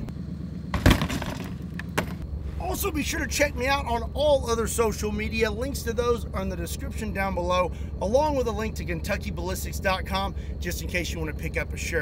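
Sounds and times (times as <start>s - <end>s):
low steady hum: 0.0s - 12.0s
car window glass breaking: 0.8s - 2.2s.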